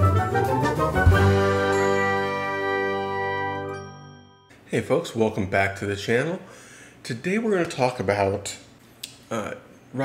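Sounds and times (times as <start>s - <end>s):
bell-like ringing chord: 1.5s - 4.5s.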